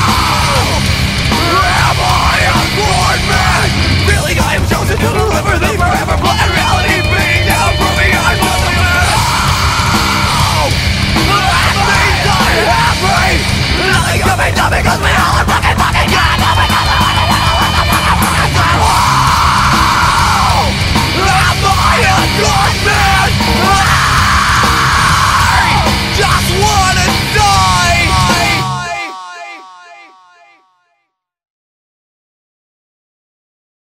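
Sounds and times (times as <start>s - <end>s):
metal song with yelled vocals: 0.0s - 30.8s.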